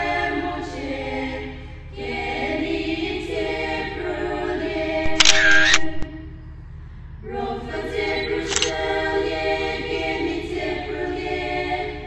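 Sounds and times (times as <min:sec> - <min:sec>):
choir singing: 0:00.0 - 0:06.4, 0:07.2 - 0:12.0.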